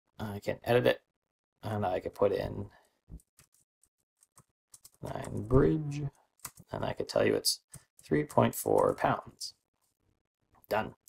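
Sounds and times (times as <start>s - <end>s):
keyboard keys clicking: 4.2s - 5.4s.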